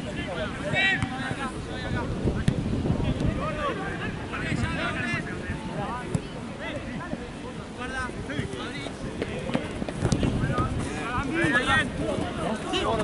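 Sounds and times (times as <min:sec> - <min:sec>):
wind rumbling on microphone: 0:01.4 - 0:13.0.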